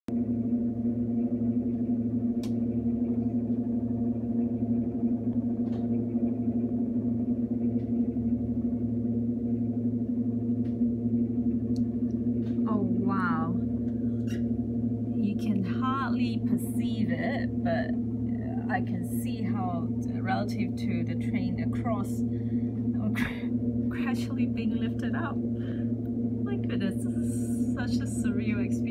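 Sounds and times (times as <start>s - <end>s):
machine hum of low tones: 0.0s - 28.9s.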